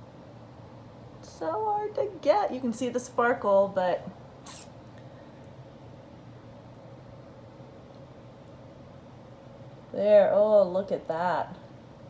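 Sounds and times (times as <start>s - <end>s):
faint steady hum: 0.0s - 12.0s
soft hiss: 0.0s - 12.0s.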